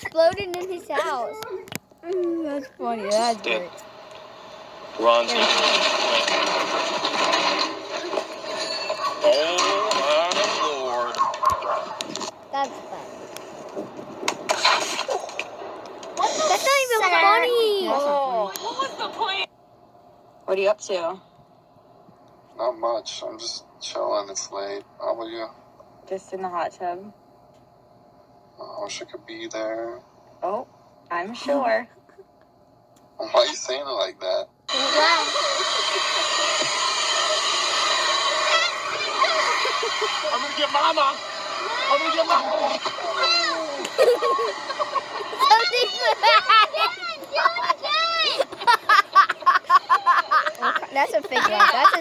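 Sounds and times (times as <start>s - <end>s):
vacuum cleaner running: 2.8s - 12.3s, 34.7s - 52.0s
clatter and scrape of skater falling: 5.4s - 10.8s, 14.2s - 15.5s.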